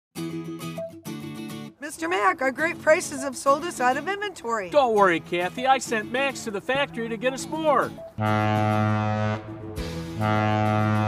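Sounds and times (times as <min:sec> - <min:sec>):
ship horn long low blast: 0:08.2 - 0:11.0.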